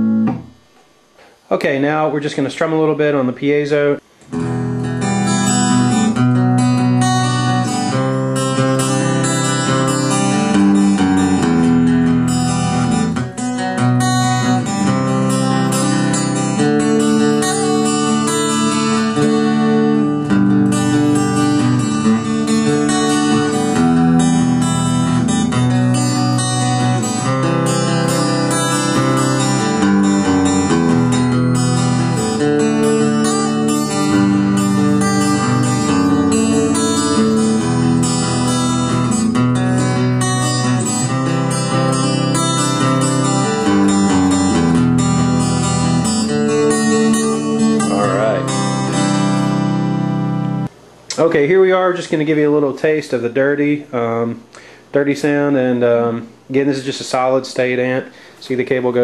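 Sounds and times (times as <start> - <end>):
electric guitar strumming chords: 0.0 - 1.3, 4.0 - 51.3.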